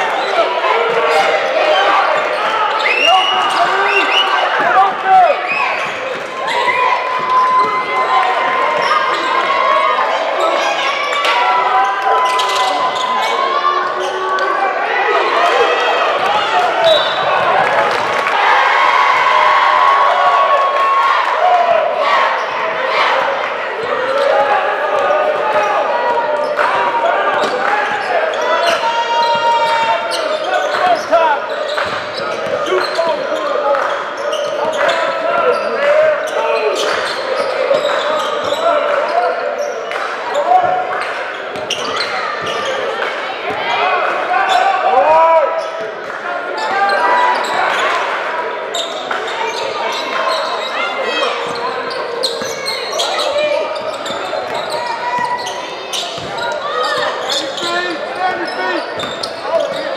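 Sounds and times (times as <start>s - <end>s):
indistinct echoing voices: 0.0s - 59.9s
basketball bouncing on court: 56.1s - 56.5s.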